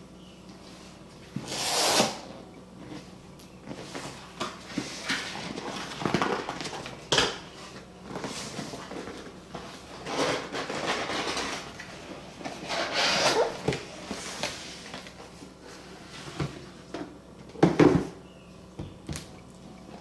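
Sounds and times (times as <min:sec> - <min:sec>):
cardboard box rustling and scraping: 0:07.7 - 0:16.7.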